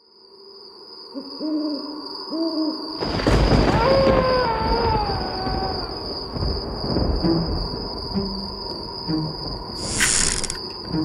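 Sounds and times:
crickets chirring: 0:00.0 - 0:11.0
owl hooting: 0:01.1 - 0:02.9
wolf howling: 0:03.4 - 0:06.4.

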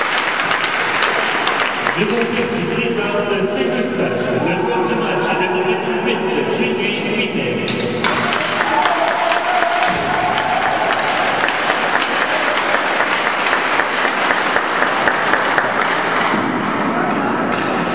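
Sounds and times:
crowd applauding: 0:00.0 - 0:03.2, 0:08.0 - 0:17.9.

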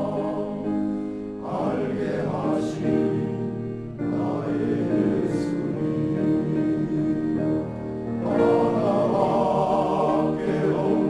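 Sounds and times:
men's choir singing: 0:00.0 - 0:11.0.

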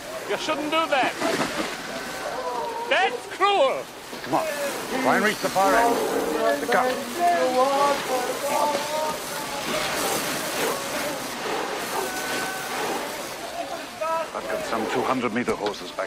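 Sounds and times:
men calling out: 0:00.0 - 0:15.2
fire hose spraying on wood: 0:00.0 - 0:16.0.

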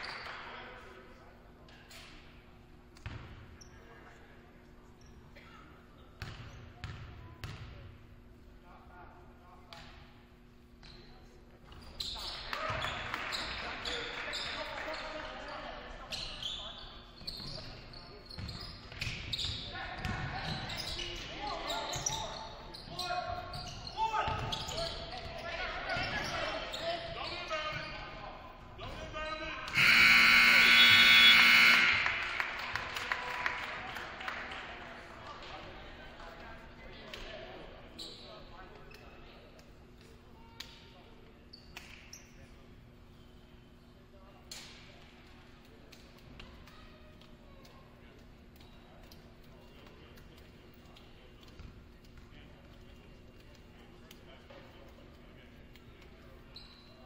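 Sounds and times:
basketball bounces: 0:03.0 - 0:03.4, 0:06.2 - 0:07.8, 0:18.4 - 0:20.9
sneaker squeaks: 0:03.0 - 0:04.2, 0:04.8 - 0:07.8, 0:10.7 - 0:15.2, 0:16.0 - 0:32.1, 0:37.9 - 0:39.2, 0:41.4 - 0:42.6, 0:56.4 - 0:57.0
scoreboard horn buzzing: 0:29.7 - 0:32.6
crowd noise: 0:29.7 - 0:36.7.

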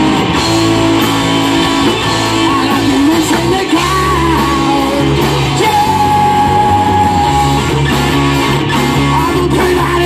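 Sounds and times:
live rock band playing: 0:00.0 - 0:10.0
man singing: 0:02.0 - 0:08.0, 0:08.7 - 0:10.0.

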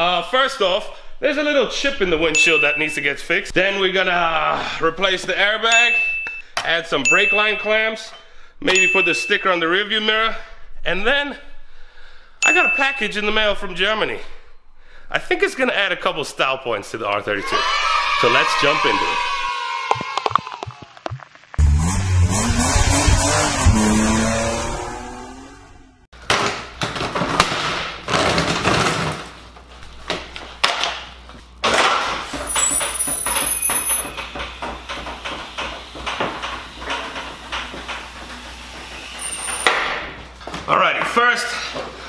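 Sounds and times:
revving engine-like sound effect: 0:21.6 - 0:26.0.

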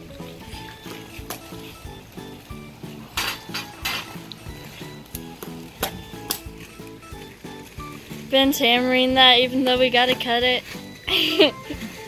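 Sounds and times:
background music: 0:00.0 - 0:12.0
hammer striking plastic edging: 0:05.1 - 0:06.9.

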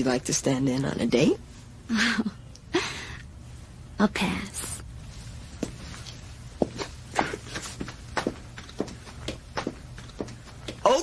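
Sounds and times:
low background hum: 0:00.0 - 0:11.0
footsteps: 0:05.0 - 0:11.0.

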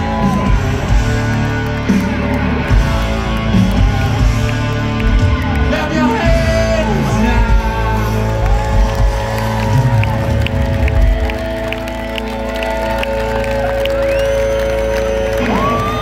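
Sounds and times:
crowd cheering and whooping: 0:00.0 - 0:16.0
live concert music: 0:00.0 - 0:16.0.

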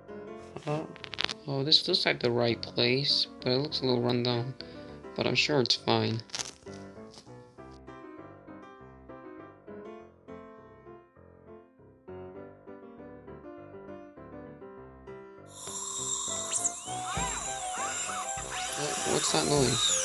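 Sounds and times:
light background music: 0:00.1 - 0:09.9, 0:15.4 - 0:20.0
dentist's drill whine: 0:15.5 - 0:20.0.

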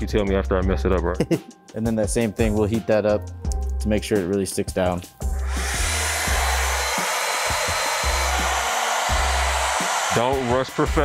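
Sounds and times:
hair dryer blowing: 0:05.4 - 0:11.0.

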